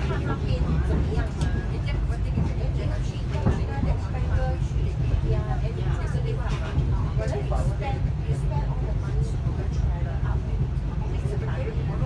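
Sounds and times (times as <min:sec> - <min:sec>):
people talking: 0:00.0 - 0:12.0
train rumbling: 0:00.0 - 0:12.0.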